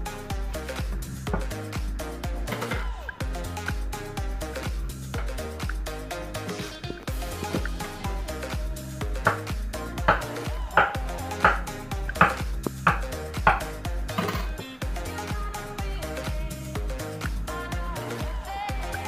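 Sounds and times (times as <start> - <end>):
dance music: 0.0 - 19.0.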